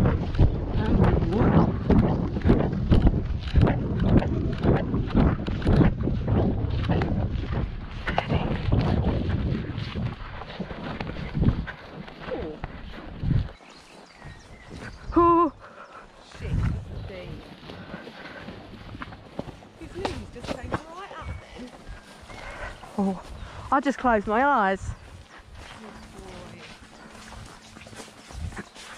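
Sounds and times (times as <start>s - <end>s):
hooves in wet mud: 0.0s - 28.9s
wind buffeting microphone: 0.0s - 28.9s.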